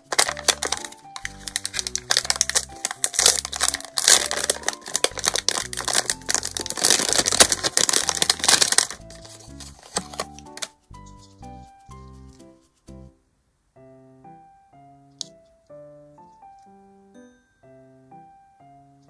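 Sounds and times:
plastic packaging crinkling: 0.0 - 11.4
background music simple melody: 0.0 - 19.0.

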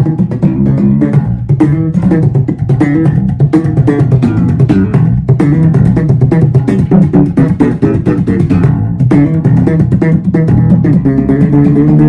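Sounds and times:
slap bass guitar: 0.0 - 12.0.

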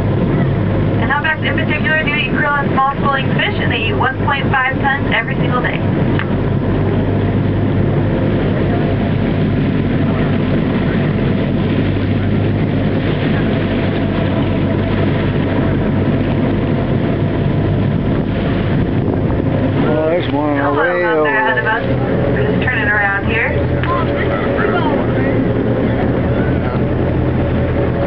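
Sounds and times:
boat engine drone: 0.0 - 28.0
wind and water rushing: 0.0 - 28.0.

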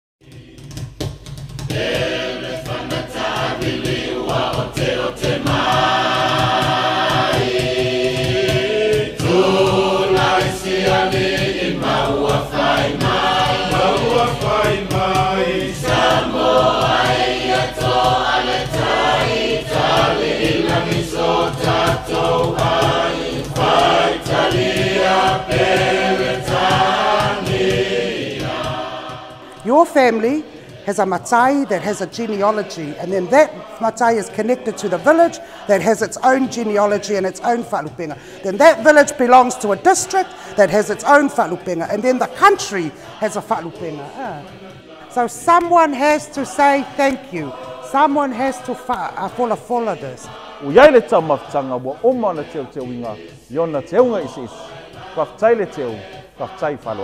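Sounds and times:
choir singing: 0.2 - 1.0, 1.6 - 57.0
steady beat: 0.2 - 57.0.

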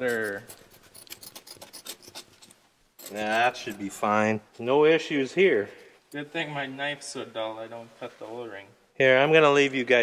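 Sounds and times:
knife scraping rubber ring: 0.0 - 4.0.

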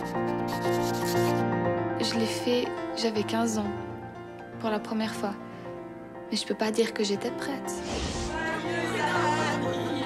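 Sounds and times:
scratchy chalk strokes: 0.0 - 1.4
background music with held tones: 0.0 - 10.0.

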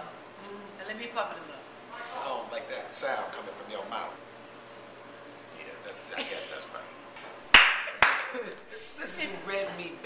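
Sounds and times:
sharp hand claps: 7.5 - 8.4.

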